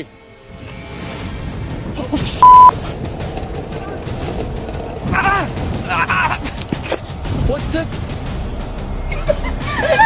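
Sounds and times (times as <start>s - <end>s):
background music: 0.0s - 10.0s
golf cart driving: 2.4s - 7.2s.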